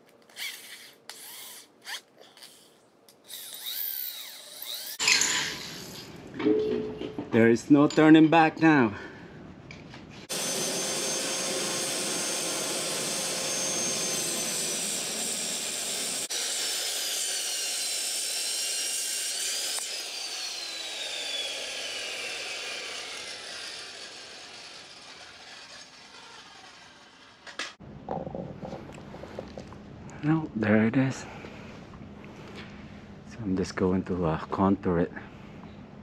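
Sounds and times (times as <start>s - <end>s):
circular saw cutting metal: 3.3s - 6.1s, 10.3s - 27.8s
saw blade winding down: 3.3s - 6.1s, 10.3s - 27.8s.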